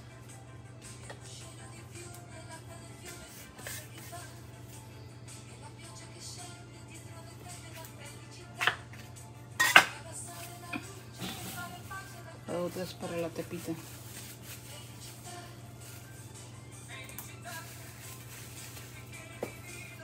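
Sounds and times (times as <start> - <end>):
soft background music: 0.0 - 20.0.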